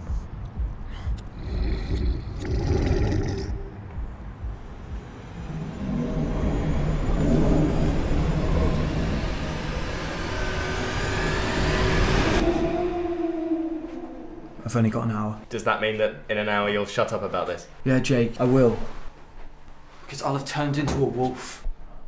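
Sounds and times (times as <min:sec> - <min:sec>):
low rumbling noise rising in pitch: 0:01.3 - 0:15.4.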